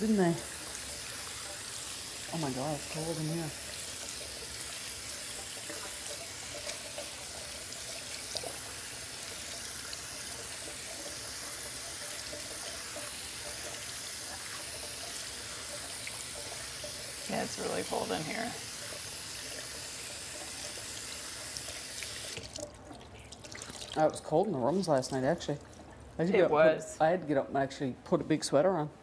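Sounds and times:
water running from sink tap: 0.0 - 26.3.

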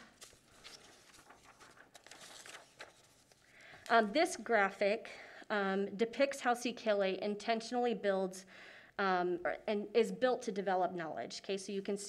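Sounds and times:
faint small clicks and rustles: 0.0 - 4.0.

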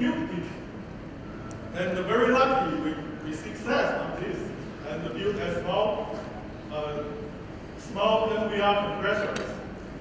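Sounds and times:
man talking: 0.0 - 0.7, 1.7 - 9.7.

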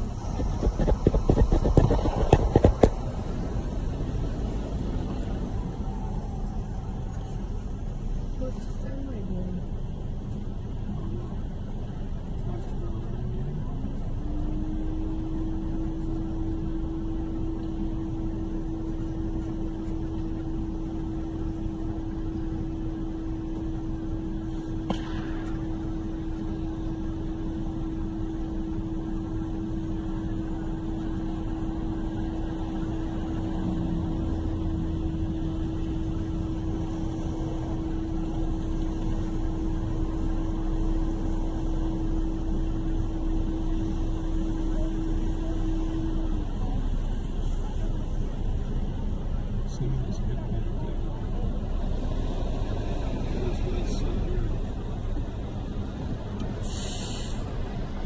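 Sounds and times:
steady hum: 0.0 - 58.0
vehicle rumble inside cab: 0.0 - 58.0.

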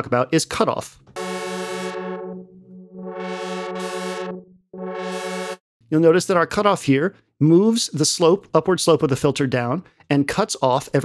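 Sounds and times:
buzzy synth note with filter sweep: 1.2 - 5.6.

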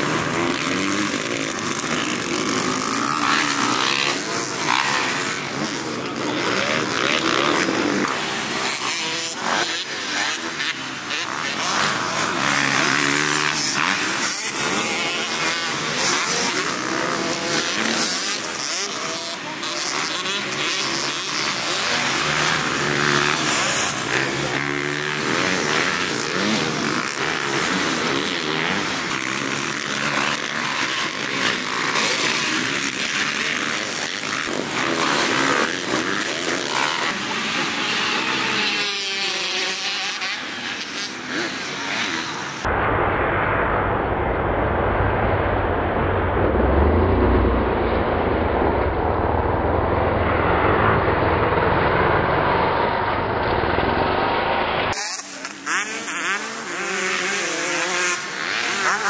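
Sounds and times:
dirt bike engines revving: 0.0 - 42.7, 46.3 - 59.0.

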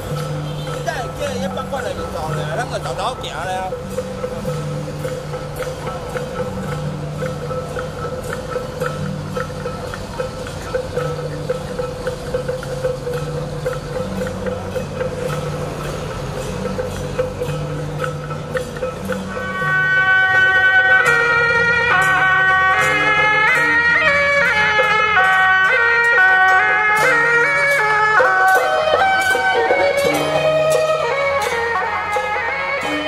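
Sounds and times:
light percussive ticks: 0.0 - 33.0
reedy wind melody: 0.0 - 33.0.

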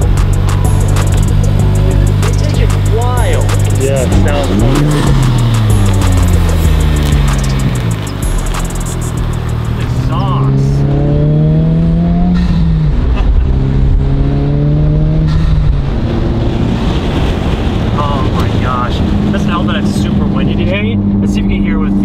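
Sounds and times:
car engine accelerating hard: 0.0 - 22.0.

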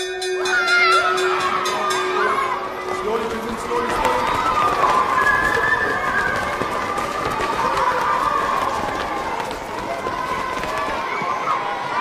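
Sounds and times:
children chattering and calling out: 0.4 - 12.0
running footsteps: 1.0 - 12.0.

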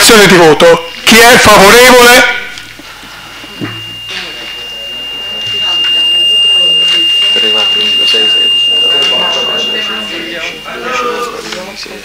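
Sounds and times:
microphone feedback whistle: 0.9 - 12.0
low murmured voices: 2.7 - 12.0.

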